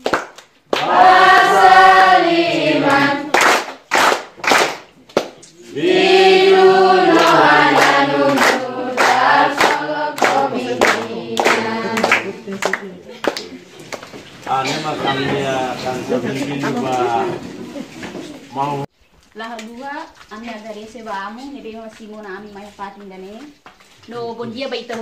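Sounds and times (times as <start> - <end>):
hand clapping: 0.0 - 1.7, 2.8 - 5.5, 7.1 - 14.2
children singing together: 0.8 - 3.4, 5.7 - 12.6.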